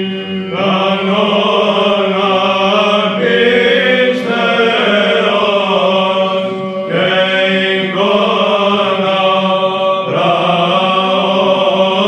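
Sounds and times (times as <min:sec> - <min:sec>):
held vocal drone: 0:00.0 - 0:12.0
men chanting melody: 0:00.5 - 0:12.0.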